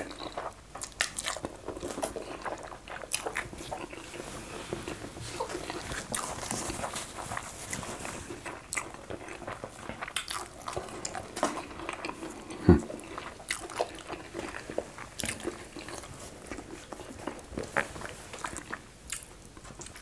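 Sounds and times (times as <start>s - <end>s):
wet biting and chewing: 0.0s - 4.2s, 8.4s - 20.0s.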